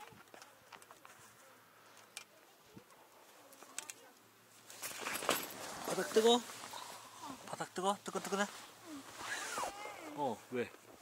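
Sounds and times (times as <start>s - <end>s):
tent fabric rustling: 4.5s - 11.0s.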